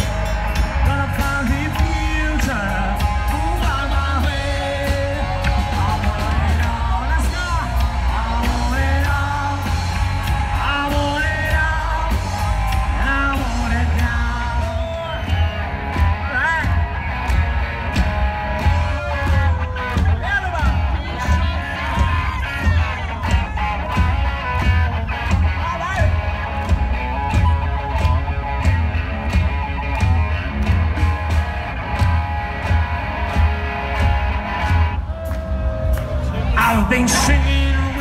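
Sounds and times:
live rock band playing: 0.0s - 38.0s
steady drumbeat: 0.0s - 38.0s.

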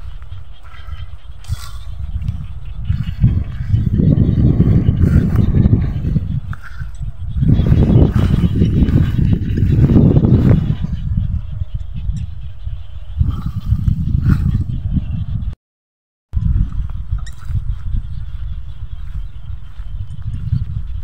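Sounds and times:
wind buffeting microphone: 0.0s - 15.6s, 16.3s - 21.0s.

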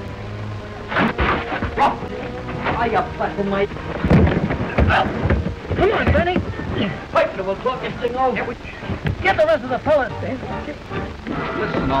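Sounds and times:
old film soundtrack hiss: 0.0s - 12.0s
heavy thumps and knocks: 3.8s - 7.1s, 8.7s - 11.9s
people shouting and grunting: 4.0s - 12.0s.

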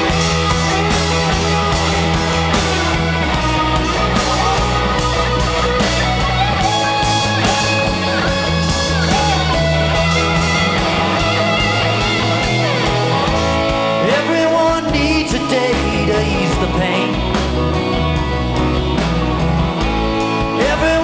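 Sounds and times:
bass: 0.0s - 21.0s
drums: 0.0s - 21.0s
electric guitar lead: 0.0s - 21.0s
keyboard: 0.0s - 21.0s.

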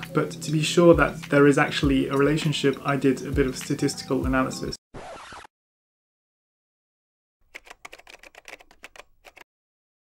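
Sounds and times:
computer keyboard typing: 7.5s - 9.5s.

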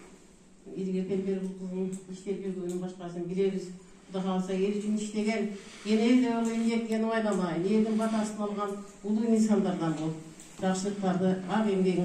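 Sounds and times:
woman talking into microphone: 0.7s - 12.0s.

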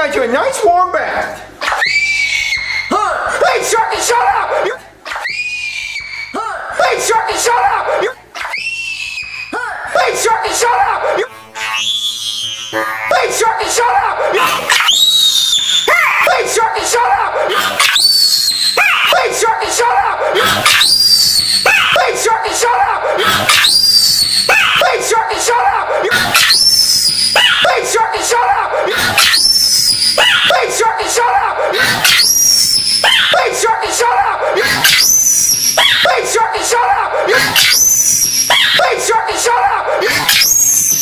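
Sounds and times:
high squeaky shouted voice: 1.6s - 17.2s, 23.4s - 28.5s, 32.0s - 34.1s, 34.8s - 39.6s
long high-pitched scream: 1.7s - 3.0s, 5.1s - 6.4s, 8.4s - 10.0s, 11.0s - 13.2s, 14.7s - 16.2s, 17.8s - 19.2s, 20.4s - 22.1s, 23.1s - 24.9s, 26.3s - 27.8s, 28.8s - 30.6s, 31.7s - 33.5s, 34.8s - 36.2s, 37.4s - 38.8s, 40.2s - 41.0s
distorted cartoon voice: 12.6s - 14.7s.

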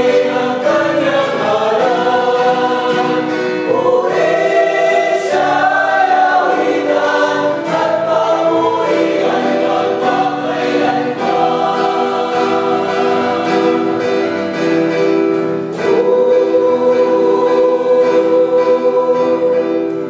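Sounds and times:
acoustic guitar: 0.0s - 20.0s
choir singing a hymn: 0.0s - 20.0s
electronic keyboard: 0.0s - 20.0s.

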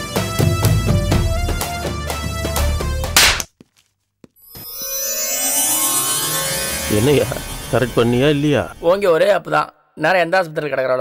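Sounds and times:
background music: 0.0s - 3.4s, 4.6s - 9.4s.

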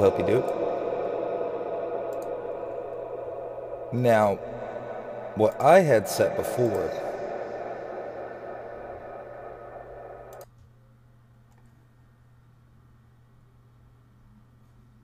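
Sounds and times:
faint low hum: 0.0s - 10.4s
man's voice with reverb tail: 0.0s - 10.4s.

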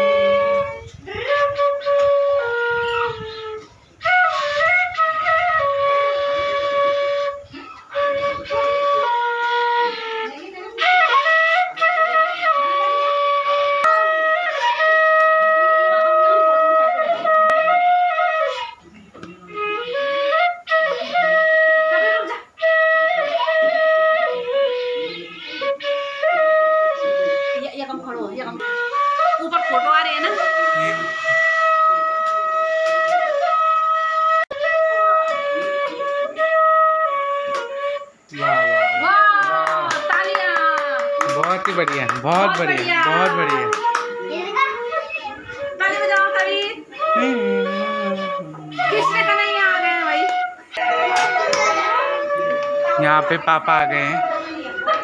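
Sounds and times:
bamboo flute melody: 0.0s - 55.0s.

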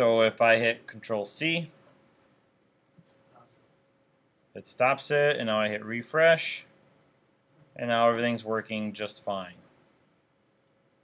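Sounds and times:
computer mouse clicks: 2.2s - 3.7s.

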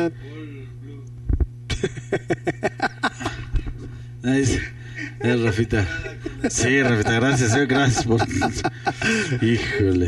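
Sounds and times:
low electrical hum: 0.0s - 10.0s
man laughing: 1.7s - 3.6s, 4.5s - 10.0s.

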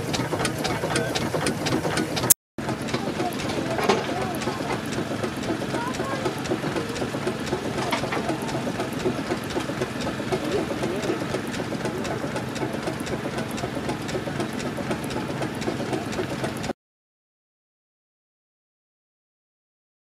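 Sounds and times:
steam engine idling with clatter: 0.0s - 16.8s.

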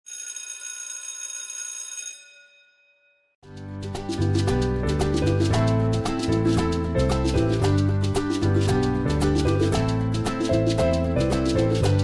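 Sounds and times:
bell ringing: 0.1s - 3.4s.

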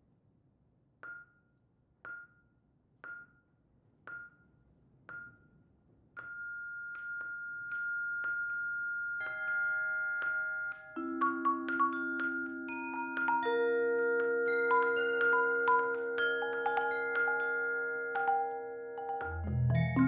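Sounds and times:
mallet percussion notes: 6.2s - 20.0s.

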